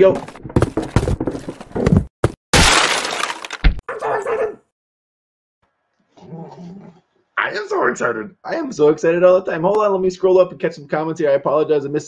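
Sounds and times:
loud crash of breaking: 2.6 - 3.8.

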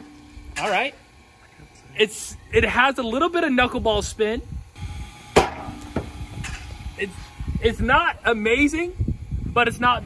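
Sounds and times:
pitching machine launching baseball: 5.0 - 6.8
ball knocking into net: 5.4 - 6.2.

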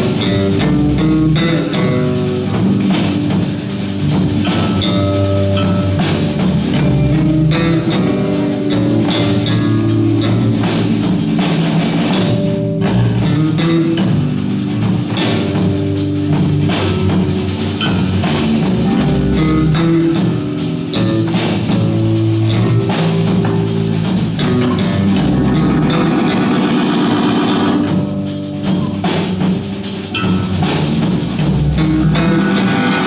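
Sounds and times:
bass guitar: 0.0 - 33.0
drum kit with cymbals: 0.0 - 33.0
electric guitars: 0.0 - 33.0
punk rock band playing: 0.0 - 33.0.

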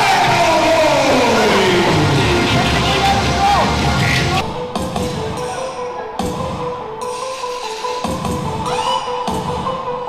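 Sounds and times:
crowd noise and shouts: 0.0 - 4.4
wrestling entrance music: 0.0 - 10.0.

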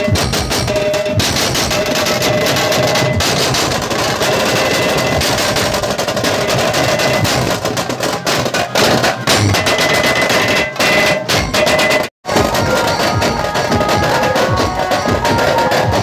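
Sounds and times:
drums playing fast rhythm: 0.0 - 16.0.

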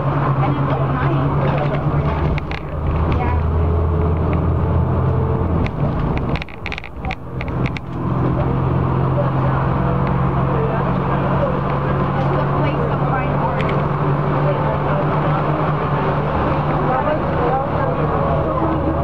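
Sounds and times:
bus engine and road drone: 0.0 - 19.0.

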